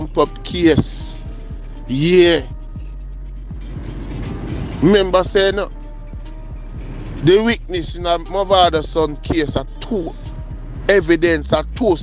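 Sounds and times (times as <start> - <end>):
man speaking: 0.0 - 2.6, 4.8 - 5.8, 7.2 - 10.2, 10.9 - 12.0
background music: 0.0 - 12.0
steady low hum: 0.0 - 12.0.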